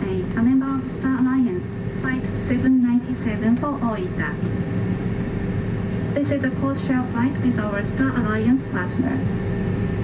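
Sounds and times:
cabin announcement: 0.0 - 4.8, 6.0 - 9.3
aircraft cabin rumble: 0.0 - 10.0.

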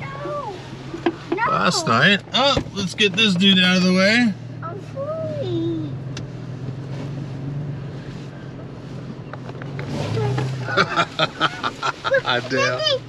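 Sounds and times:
car engine running low: 0.0 - 13.0.

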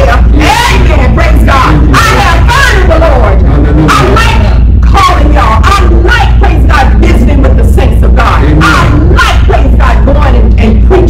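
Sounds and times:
steady low drone: 0.0 - 11.0
woman shouting: 0.0 - 11.0.

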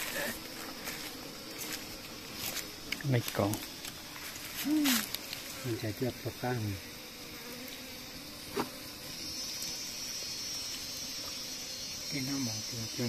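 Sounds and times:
insects droning: 0.0 - 13.0.

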